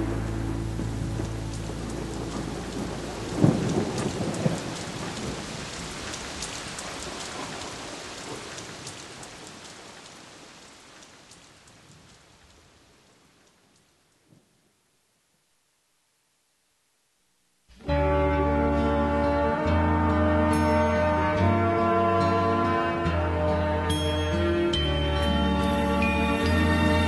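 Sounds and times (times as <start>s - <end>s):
thunder rumble: 0.0s - 13.4s
rain: 0.0s - 27.0s
scattered crackles: 0.6s - 14.8s.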